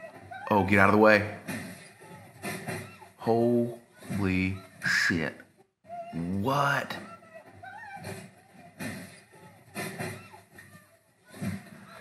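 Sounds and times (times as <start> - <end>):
faint voices: 5.9 - 12.0.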